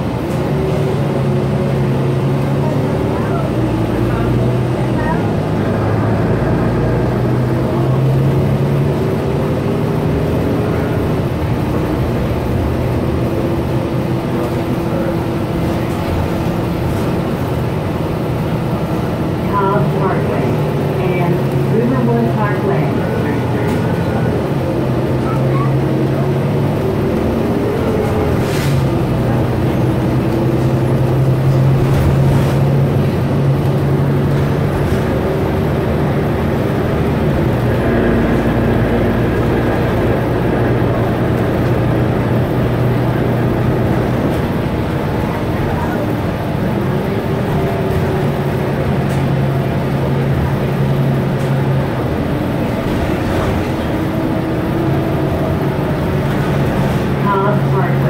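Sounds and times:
bus engine running: 0.0s - 58.0s.

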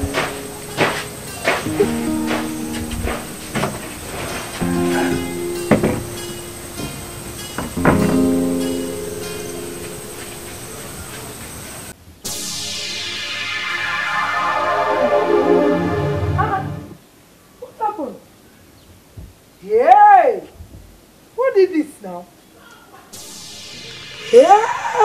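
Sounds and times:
single struck ringing notes: 0.0s - 11.1s, 23.2s - 25.0s
dense music cue: 0.0s - 11.2s, 12.3s - 17.0s, 23.2s - 25.0s.

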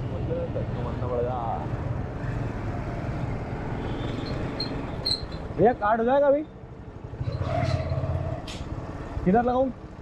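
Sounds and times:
road and wind noise: 0.0s - 10.0s.

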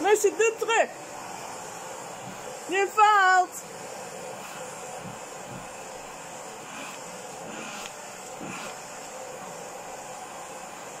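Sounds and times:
vacuum cleaner running: 0.0s - 11.0s.

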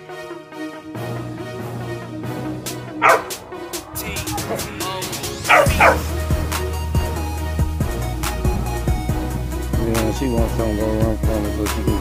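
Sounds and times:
background music with steady beat: 0.0s - 12.0s
dog barking: 3.0s - 3.7s, 5.4s - 6.1s.

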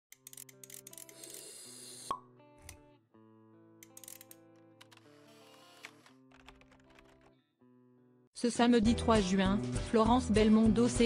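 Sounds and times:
soft music: 0.1s - 11.0s.

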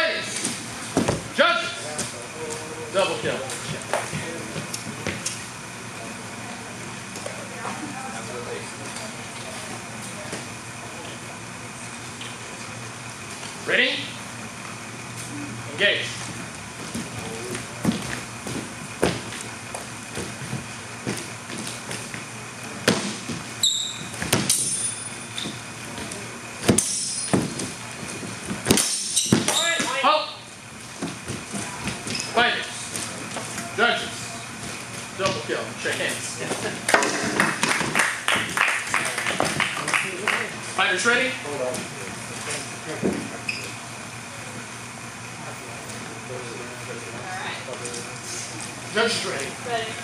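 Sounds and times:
feet thudding on wooden floor: 16.8s - 22.2s, 25.4s - 29.5s.

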